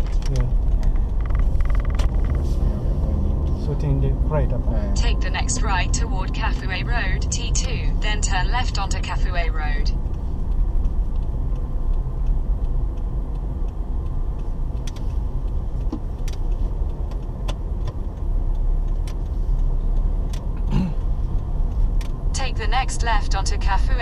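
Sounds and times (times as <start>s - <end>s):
engine and tyre rumble: 0.0s - 24.0s.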